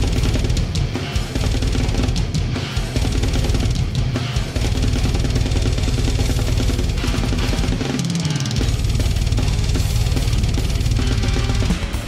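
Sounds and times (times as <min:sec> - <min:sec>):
double bass drumming: 0:00.0 - 0:11.9
cymbals and snare: 0:00.0 - 0:12.0.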